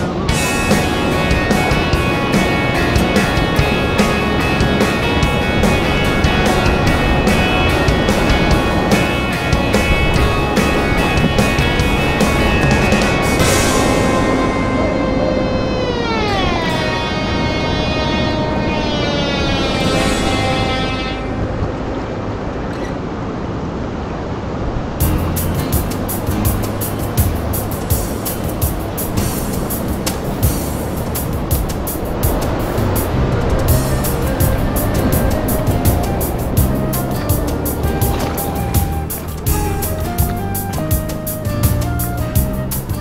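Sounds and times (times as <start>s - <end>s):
upbeat music with drum beat: 0.2s - 14.8s, 25.0s - 43.0s.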